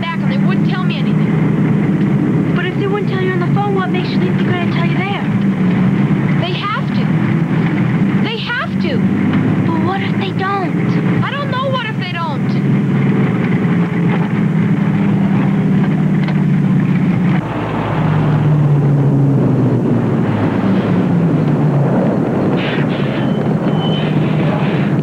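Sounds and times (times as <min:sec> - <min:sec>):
bus engine drone: 0:00.0 - 0:25.0.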